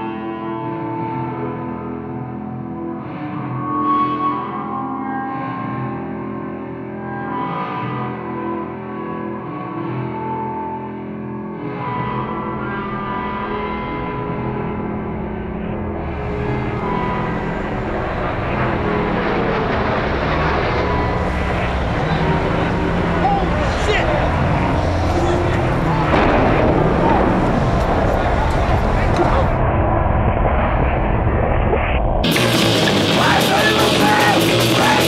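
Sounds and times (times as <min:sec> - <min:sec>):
dense wash of noise: 0:13.1 - 0:35.0
voices: 0:16.0 - 0:29.7, 0:32.3 - 0:35.0
punk rock with shouted vocals: 0:32.3 - 0:35.0.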